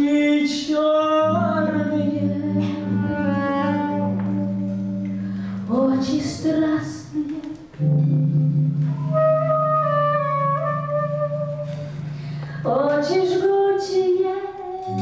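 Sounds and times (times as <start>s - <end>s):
live band playing slow song: 0.0s - 15.0s
person singing gliding melody: 1.2s - 6.1s.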